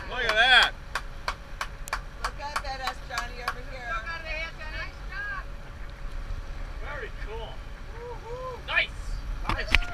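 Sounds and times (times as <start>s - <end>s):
boat engine rumble: 0.0s - 9.9s.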